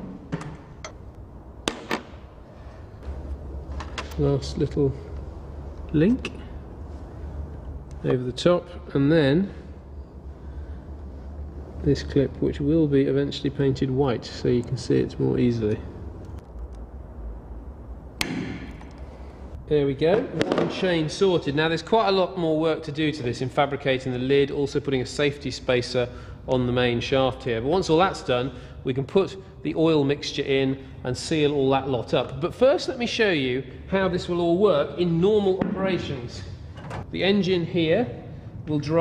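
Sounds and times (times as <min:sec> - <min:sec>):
low steady hum: 0:00.0 - 0:39.0.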